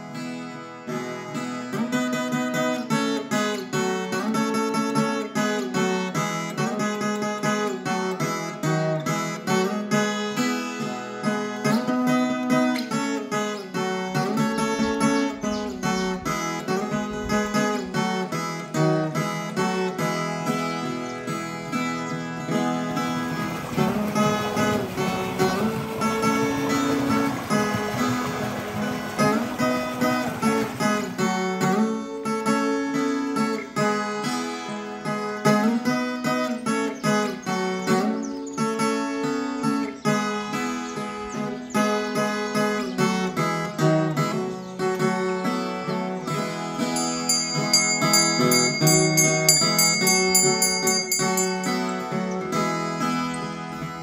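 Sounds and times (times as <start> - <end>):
folk guitar plucked and strummed: 0.0 - 54.0.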